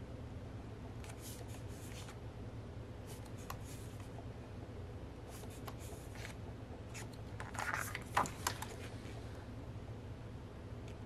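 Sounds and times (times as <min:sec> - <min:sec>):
paper pages rustling: 0:01.0 - 0:02.2, 0:05.3 - 0:09.2.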